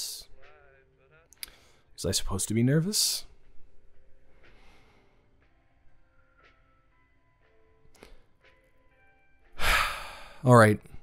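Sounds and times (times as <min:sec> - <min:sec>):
soft background music: 0:00.0 - 0:11.0
man sighing: 0:09.6 - 0:10.4.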